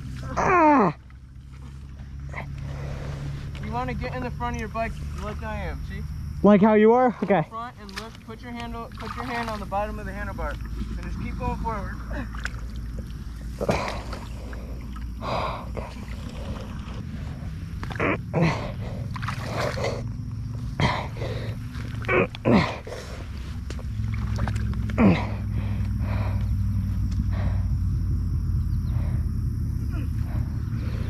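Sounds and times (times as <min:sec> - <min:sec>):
splashing and sloshing water: 0:00.0 - 0:05.7, 0:07.1 - 0:27.3
low rumble: 0:07.4 - 0:31.0
person grunting: 0:18.0 - 0:18.8, 0:22.1 - 0:22.9, 0:25.0 - 0:25.4.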